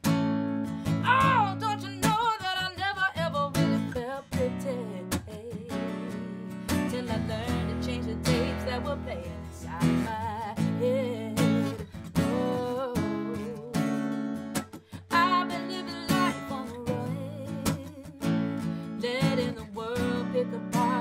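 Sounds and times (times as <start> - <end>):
strummed acoustic guitar: 0.0 - 21.0
woman singing with vibrato: 0.9 - 14.2, 14.9 - 21.0.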